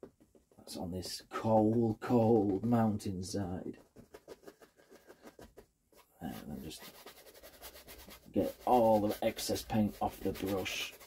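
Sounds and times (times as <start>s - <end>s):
bristle brush scrubbing canvas: 3.7s - 11.0s.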